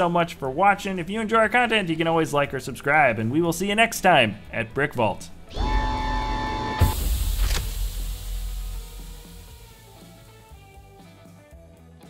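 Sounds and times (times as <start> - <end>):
steady tone: 5.5 - 11.0
sliding doors clanging shut: 5.6 - 7.9
soft music: 7.9 - 12.0.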